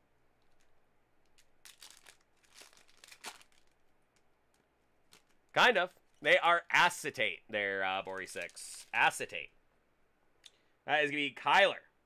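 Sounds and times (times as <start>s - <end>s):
foil wrapper tearing open: 1.4s - 3.8s.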